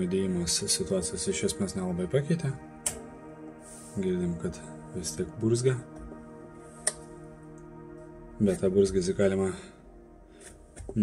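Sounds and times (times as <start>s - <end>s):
sharp click: 2.8s - 3.0s.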